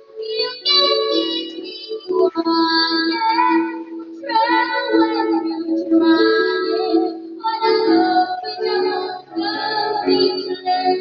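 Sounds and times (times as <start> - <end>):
backing music: 0.0 - 11.0
girl singing pop ballad: 0.1 - 11.0.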